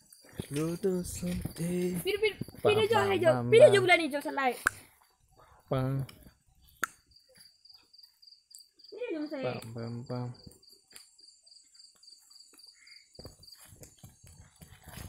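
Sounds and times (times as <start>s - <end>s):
cricket chirping: 0.0s - 15.0s
man's voice: 0.5s - 3.8s.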